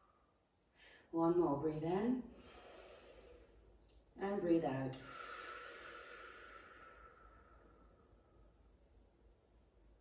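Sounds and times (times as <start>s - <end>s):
woman exhaling through pursed lips: 4.9s - 8.6s.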